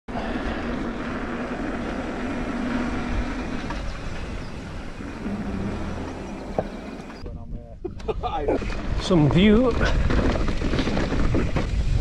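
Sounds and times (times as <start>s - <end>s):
bike tyres rolling on tarmac: 0.1s - 7.2s, 8.6s - 12.0s
wind on microphone: 0.8s - 12.0s.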